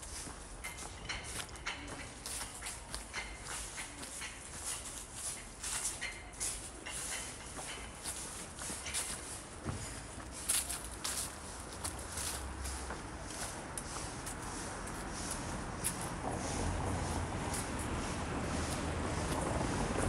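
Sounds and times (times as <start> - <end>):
footsteps on stone pavement: 0.0 - 20.0.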